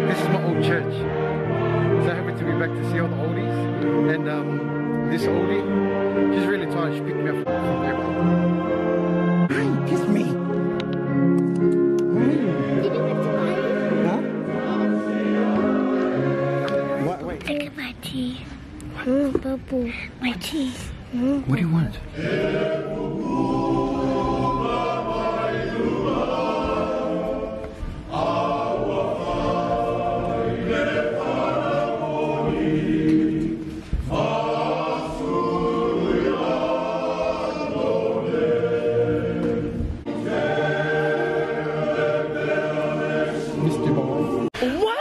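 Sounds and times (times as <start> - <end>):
men's choir singing a hymn: 0.0 - 11.2, 12.0 - 17.1, 21.9 - 44.6.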